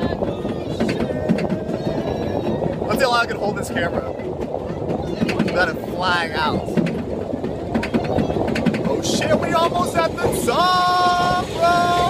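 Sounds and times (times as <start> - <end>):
roller coaster low rumble: 0.0 - 12.0.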